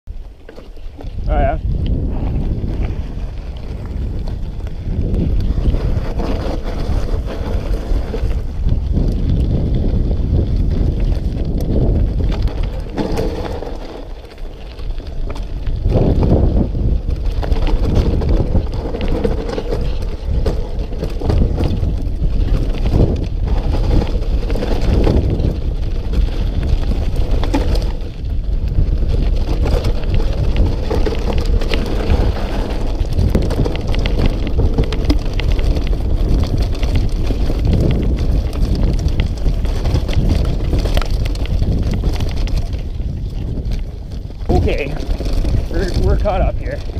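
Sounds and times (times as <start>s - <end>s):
bike rattling and knocking: 0.1s - 46.9s
tyres crunching over gravel: 0.1s - 46.9s
wind rushing over microphone: 0.1s - 46.9s.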